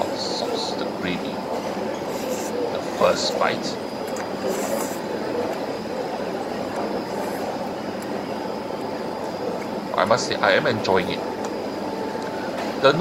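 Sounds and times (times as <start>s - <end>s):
faint steady high whine: 0.0s - 13.0s
food centre rumbling din: 0.0s - 13.0s.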